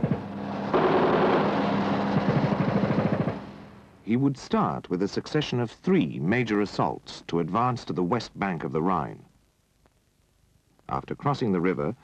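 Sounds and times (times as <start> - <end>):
tank engine running: 0.0 - 3.9.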